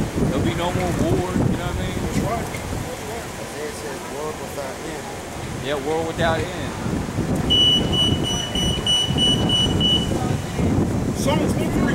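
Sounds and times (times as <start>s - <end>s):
low rumble of street noise: 0.0s - 11.9s
high electronic beeping: 7.5s - 10.3s.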